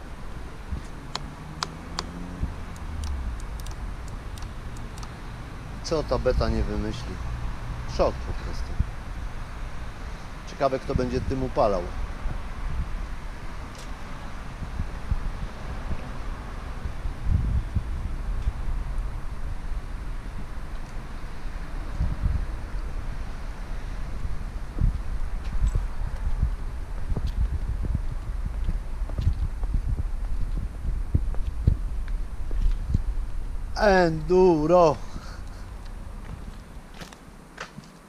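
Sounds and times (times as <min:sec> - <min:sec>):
wind buffeting microphone: 0:00.0 - 0:37.5.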